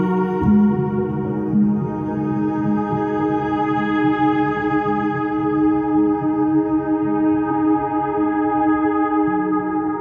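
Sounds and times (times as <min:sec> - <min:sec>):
echoing ambient guitar tones: 0:00.0 - 0:10.0.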